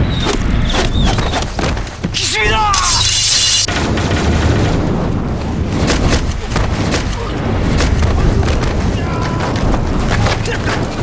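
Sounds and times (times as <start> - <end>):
low rumbling boom: 3.7 - 11.0.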